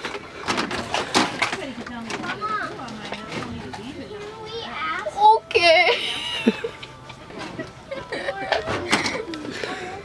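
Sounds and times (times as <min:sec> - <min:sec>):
children chattering: 0:08.0 - 0:10.0.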